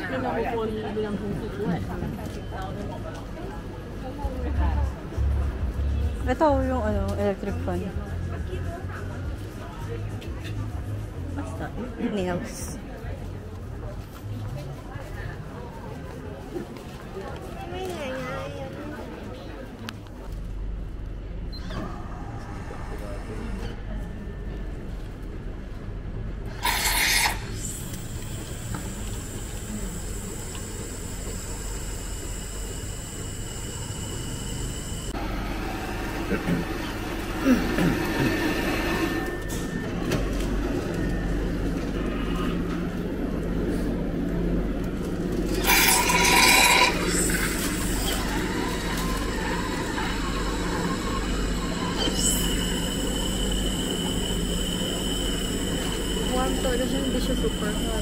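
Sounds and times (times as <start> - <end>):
drinks machine humming: 26.3 - 58.0.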